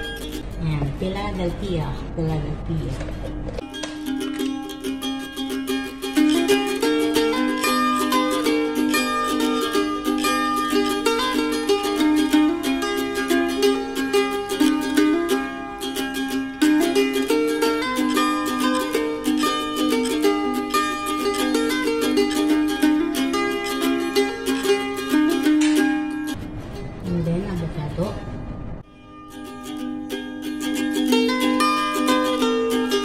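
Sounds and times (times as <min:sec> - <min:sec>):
mandolin and ukulele music: 0:00.0 - 0:33.0.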